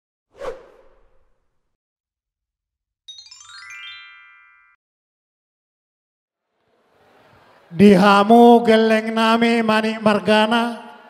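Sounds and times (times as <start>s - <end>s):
whoosh: 0.3s - 1.6s.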